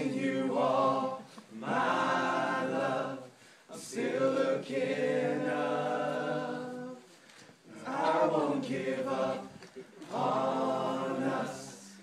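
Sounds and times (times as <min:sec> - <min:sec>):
men singing a cappella: 0:00.0 - 0:12.0.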